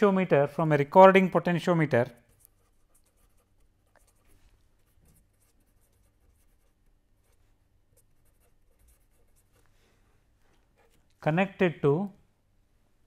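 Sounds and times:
pen writing on paper: 8.0 - 9.6.

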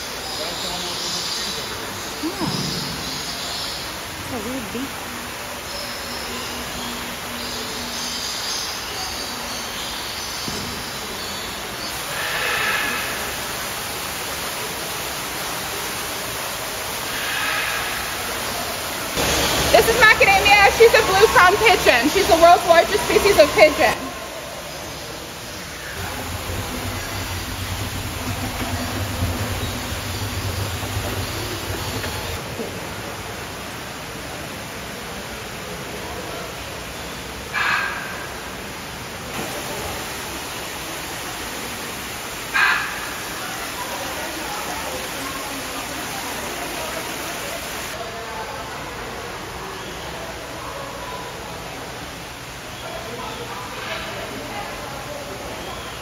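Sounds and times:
aviary background rush: 0.0 - 56.0
low hum: 25.1 - 32.9.

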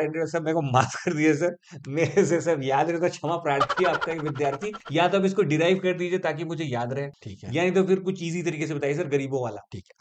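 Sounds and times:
men laughing: 3.6 - 5.0.

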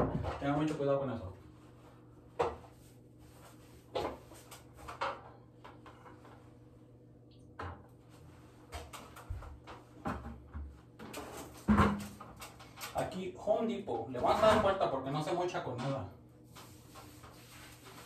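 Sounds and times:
sponge rubbing on tile: 16.5 - 18.0.

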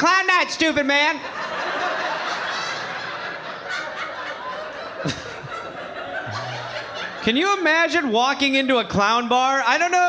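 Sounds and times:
audience laughing: 1.2 - 8.1.

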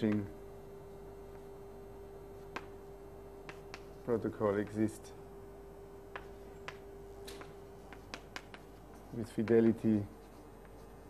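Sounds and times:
faint hum: 0.0 - 11.0
chalk tapping on blackboard: 2.4 - 4.8, 6.0 - 11.0.

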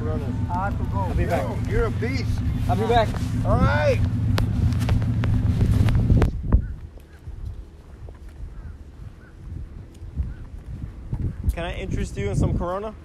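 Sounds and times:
wind rumbling on microphone: 0.0 - 13.0
footsteps on paved path: 4.0 - 11.5.

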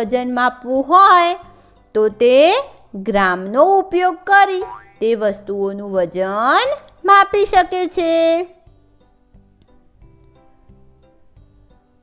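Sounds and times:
light background music: 0.0 - 12.0
lively person talking: 2.0 - 8.5.

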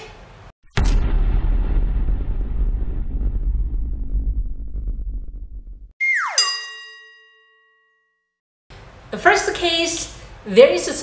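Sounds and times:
deep rumbling impact: 0.7 - 5.9.

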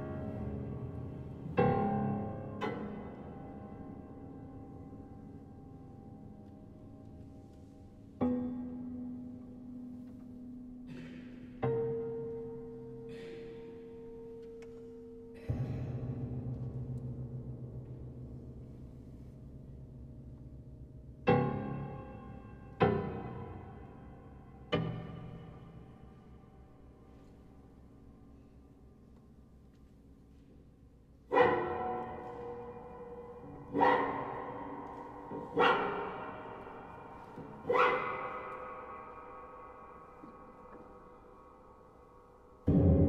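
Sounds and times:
piano strings struck and ringing: 31.3 - 43.0.

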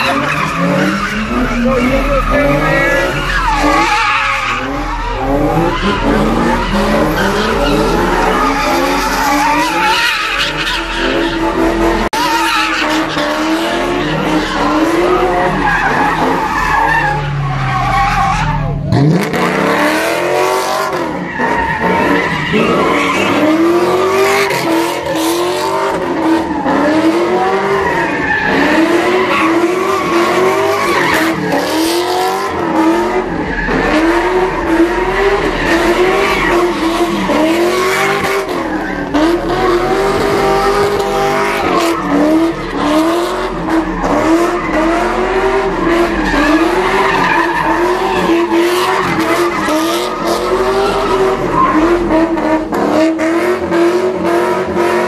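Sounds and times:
car engine revving: 0.0 - 55.0
tyres skidding on asphalt: 0.0 - 55.0.

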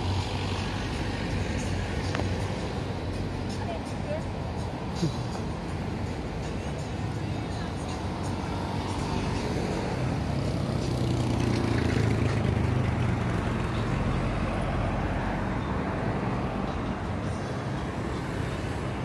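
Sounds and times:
road traffic noise: 0.0 - 19.0
vehicle passing: 0.0 - 19.0.

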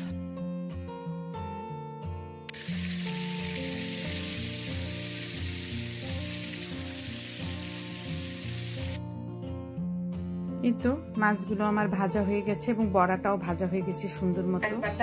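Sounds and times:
background music: 0.0 - 15.0
fish sizzling in oil: 2.5 - 9.0.

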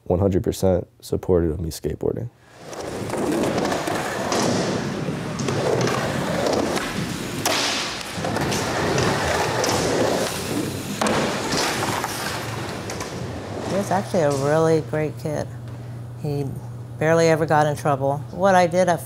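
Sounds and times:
skateboard wheels rolling on wood: 2.5 - 14.8
skateboard clacks and thuds: 2.8 - 13.8.

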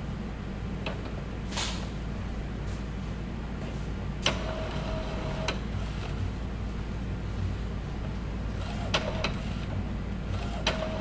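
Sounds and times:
printer motor whine: 4.2 - 11.0.

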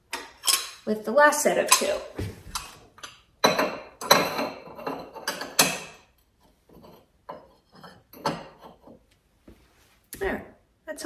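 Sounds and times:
porcelain teacups clinking: 0.2 - 0.8, 2.6 - 6.1, 6.8 - 8.9.

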